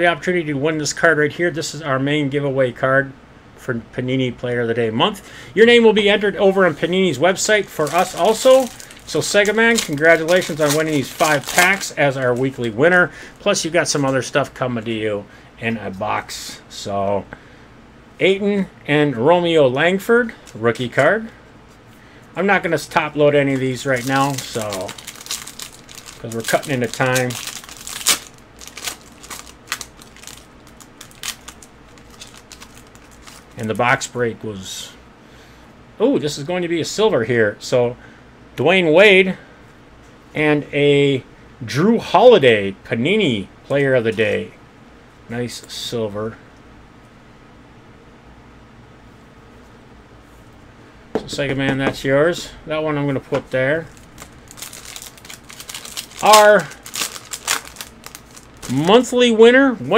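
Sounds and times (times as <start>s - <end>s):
foil wrapper tearing and crinkling: 7.7s - 12.8s, 23.5s - 33.7s, 53.9s - 59.0s.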